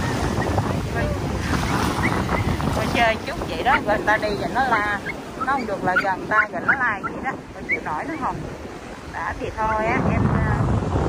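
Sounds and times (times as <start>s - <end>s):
breaking surf: 0.0s - 11.0s
wind buffeting microphone: 0.0s - 11.0s
small dog yelping and barking: 5.0s - 7.9s.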